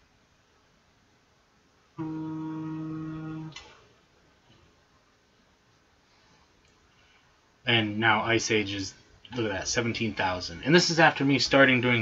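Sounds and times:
man humming low note: 2.0 - 3.7.

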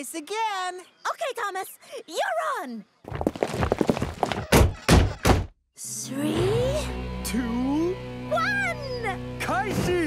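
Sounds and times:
footsteps on platform: 3.1 - 5.5.

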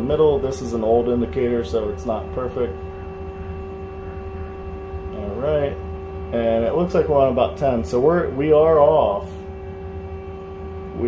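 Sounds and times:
lathe machine hum: 0.0 - 11.0.

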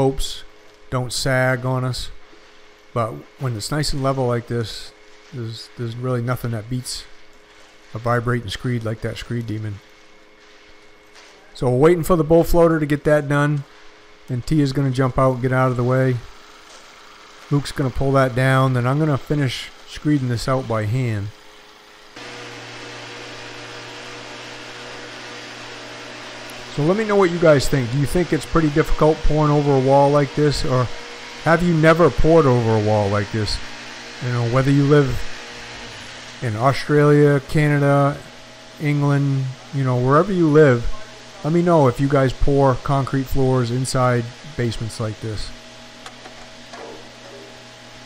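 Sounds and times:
steady low hum with hiss: 0.0 - 22.2, 23.2 - 48.0
small engine humming: 14.8 - 36.9.

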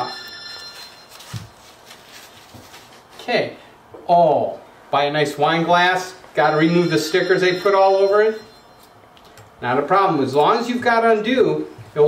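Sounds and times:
faint rustling on a tabletop: 0.7 - 3.3.

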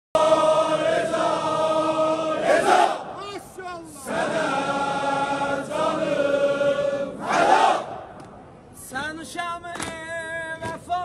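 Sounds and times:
crowd of men chanting: 0.2 - 3.2, 4.0 - 8.0.

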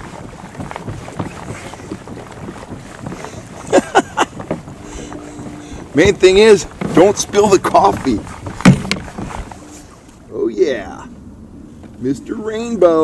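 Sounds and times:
wind on microphone: 0.0 - 10.3
low hum: 0.0 - 13.0.

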